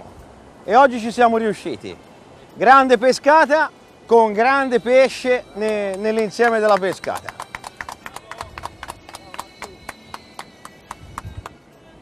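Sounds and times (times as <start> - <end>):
people clapping: 5.6 - 11.6.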